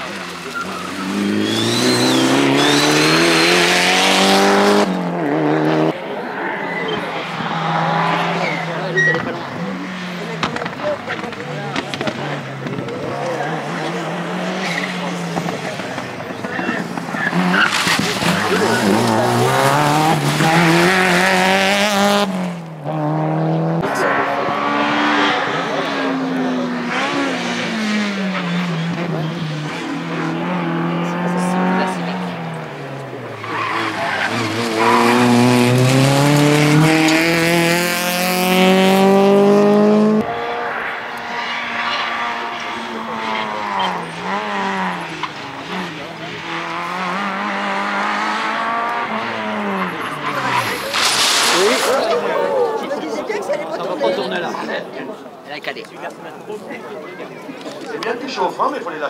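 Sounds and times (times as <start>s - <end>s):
rally car engines at full throttle: 0.0s - 59.0s.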